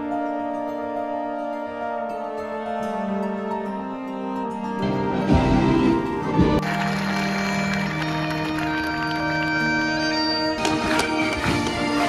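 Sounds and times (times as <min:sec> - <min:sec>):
bagpipes playing: 0:01.8 - 0:12.0.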